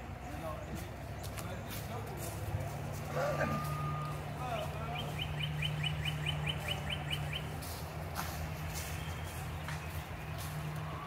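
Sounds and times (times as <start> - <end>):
bird chirping rapidly: 3.6 - 7.9.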